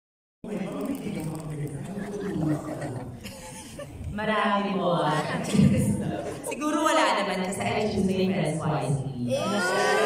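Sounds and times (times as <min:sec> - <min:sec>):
people talking: 0:00.5 - 0:03.2, 0:04.1 - 0:10.0
group of people laughing: 0:01.8 - 0:04.1.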